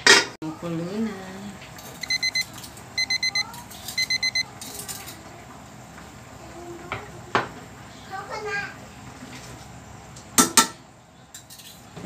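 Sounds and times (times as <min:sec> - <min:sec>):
electronic alarm beeping: 0:02.0 - 0:04.5.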